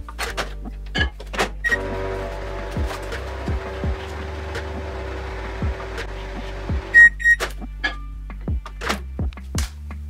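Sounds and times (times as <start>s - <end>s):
soft background music with beat: 0.0s - 10.0s
microwave oven humming: 1.7s - 7.0s.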